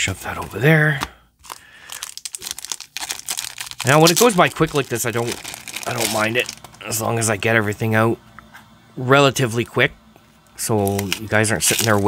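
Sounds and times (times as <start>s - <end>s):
plastic wrap crinkling: 1.4s - 7.1s, 10.6s - 12.0s.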